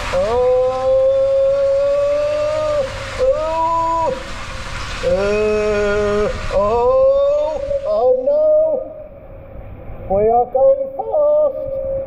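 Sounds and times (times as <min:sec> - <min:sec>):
water rushing on slide: 0:00.0 - 0:08.8
faint hiss: 0:00.0 - 0:12.0
man crying out: 0:00.1 - 0:04.2, 0:05.1 - 0:08.9.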